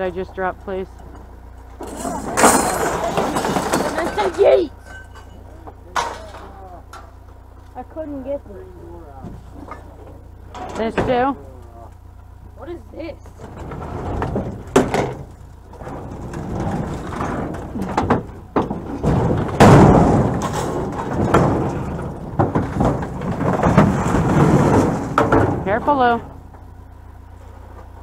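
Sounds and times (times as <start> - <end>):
metal clanks and rattles: 0.0 - 8.1, 9.1 - 12.4, 13.2 - 28.0.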